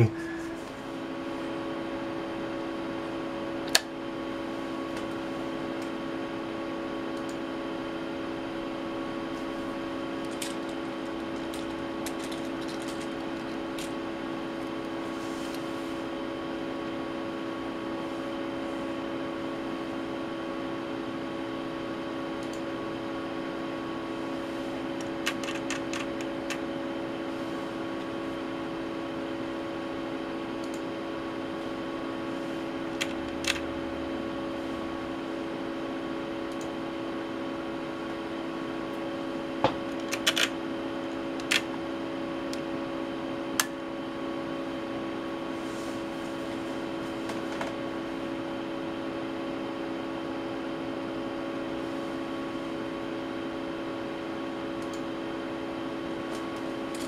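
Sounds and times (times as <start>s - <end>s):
cooling fans humming: 0.0s - 57.0s.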